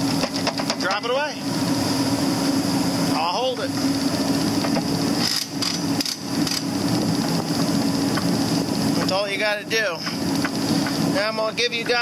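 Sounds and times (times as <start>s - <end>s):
mechanical drone: 0.0s - 12.0s.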